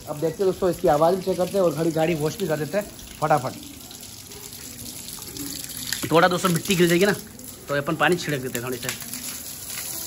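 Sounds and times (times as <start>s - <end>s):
water running from a hose: 0.0s - 10.0s.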